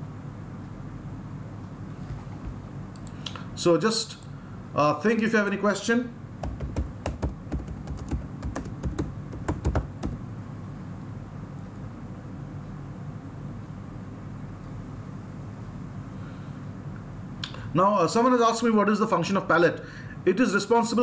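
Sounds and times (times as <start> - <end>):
low steady hum: 0.0 - 21.0
keyboard keys clicking: 6.4 - 10.2.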